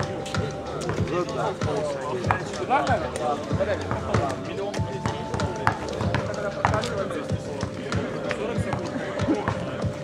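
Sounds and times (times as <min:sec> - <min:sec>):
basketball dribbled on asphalt: 0:00.0 - 0:10.0
voices of players: 0:00.0 - 0:10.0.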